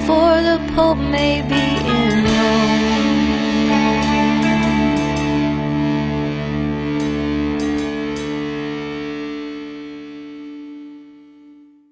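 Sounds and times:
guitar chord ringing: 0.0s - 11.9s.

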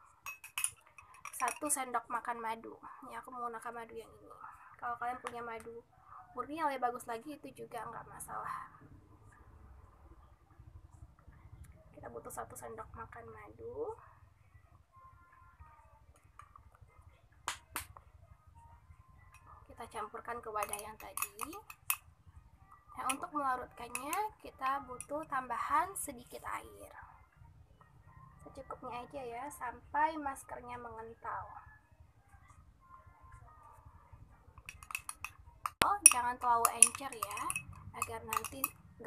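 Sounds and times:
metal spoon clinking glass: 0.2s - 1.8s, 20.6s - 22.0s, 23.0s - 25.3s, 34.6s - 38.9s
sharp clicks of bottle and spoon: 34.6s - 38.8s.

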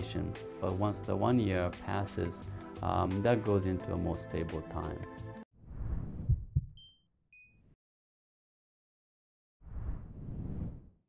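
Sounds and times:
low swell with heartbeat thumps: 5.7s - 6.8s.

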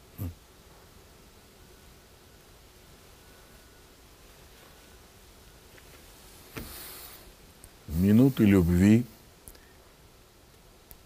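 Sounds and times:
sudden intake of breath: 6.6s - 7.3s.

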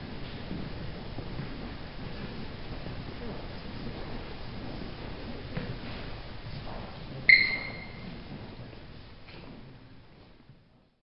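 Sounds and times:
high clear ping: 7.3s - 8.0s.

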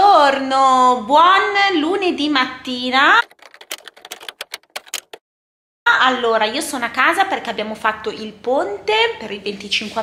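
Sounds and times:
typewriter key clicks: 3.2s - 5.2s.

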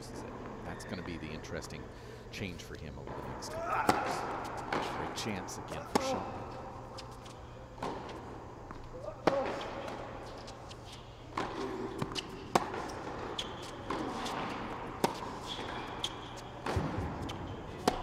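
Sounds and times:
shoe squeaks: 0.6s - 1.7s, 5.7s - 16.6s
tennis racket strikes: 3.5s - 6.4s, 9.2s - 18.0s
tennis ball bounces: 3.9s - 18.0s.

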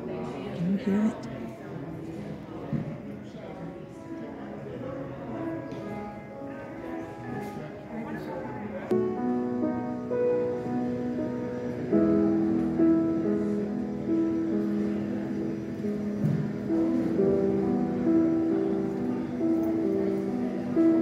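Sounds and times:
slow piano piece: 0.0s - 21.0s.

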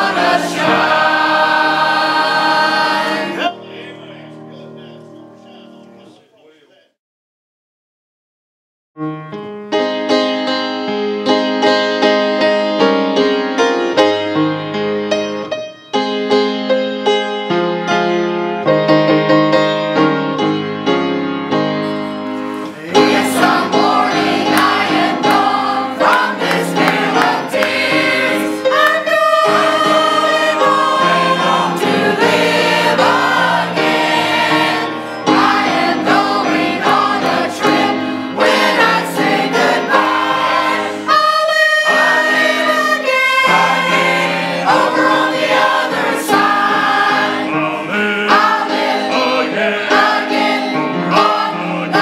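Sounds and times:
mixed choir singing: 0.0s - 4.1s, 22.5s - 52.0s.

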